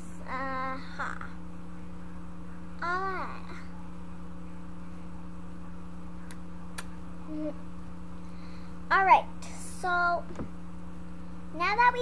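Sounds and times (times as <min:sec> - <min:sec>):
electrical hum: 0:00.0 - 0:12.0
faint buzz: 0:00.0 - 0:12.0.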